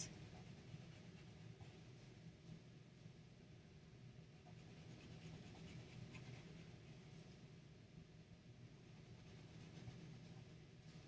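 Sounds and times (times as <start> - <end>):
low steady hum: 0.0 - 11.0
colored pencil scratching paper: 0.2 - 1.8, 4.4 - 7.4, 8.8 - 11.0.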